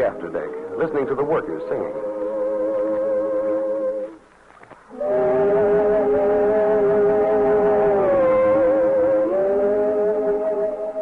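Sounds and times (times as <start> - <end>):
chorus humming in harmony: 0.0 - 4.3, 4.9 - 11.0.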